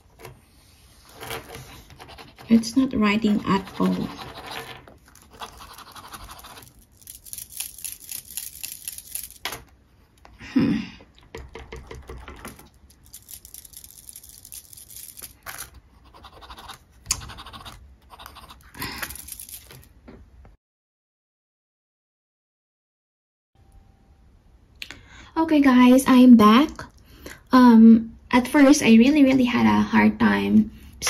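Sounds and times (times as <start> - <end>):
pen nib scratching paper: 0.9 - 9.4, 11.7 - 19.7.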